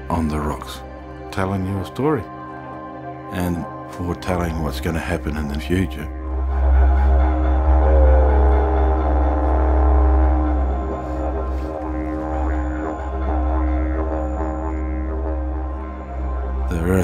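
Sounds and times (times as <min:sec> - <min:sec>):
didgeridoo drone: 0:00.0 - 0:17.0.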